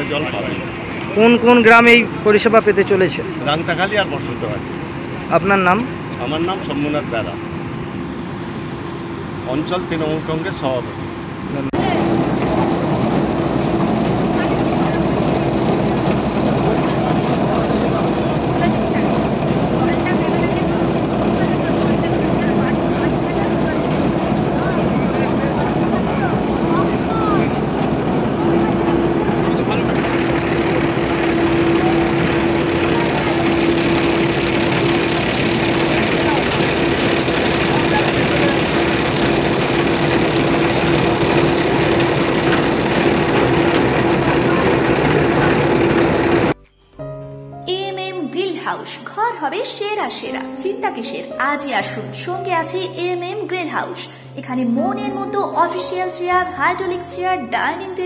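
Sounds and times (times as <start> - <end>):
engine running steadily: 0.0 - 46.6
faint voices: 11.8 - 46.6.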